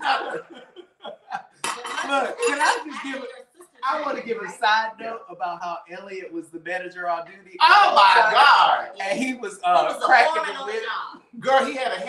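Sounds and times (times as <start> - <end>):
people laughing: 0.0 - 6.1, 7.6 - 10.8
people talking: 0.0 - 12.0.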